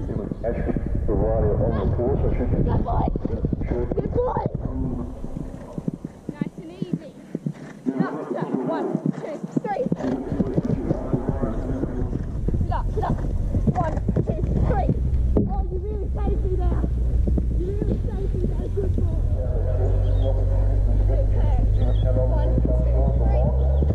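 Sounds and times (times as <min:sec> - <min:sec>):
background voices: 0:00.0 - 0:23.9
horse hoofbeats on grass: 0:00.0 - 0:23.9.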